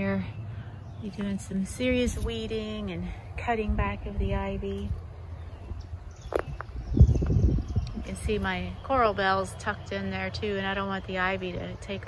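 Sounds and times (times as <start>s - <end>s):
footsteps on garden ground: 0.0s - 12.0s.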